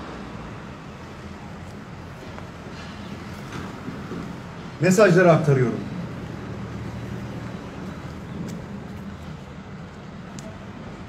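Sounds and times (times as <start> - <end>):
distant traffic hum: 0.0 - 11.0.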